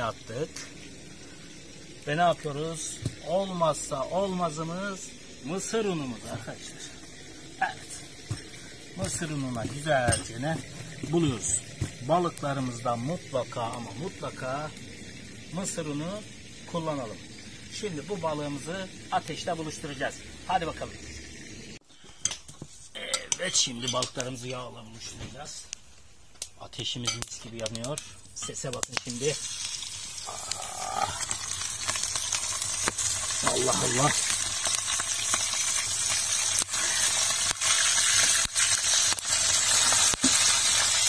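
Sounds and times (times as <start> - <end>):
fish sizzling in hot oil: 0.0 - 41.0.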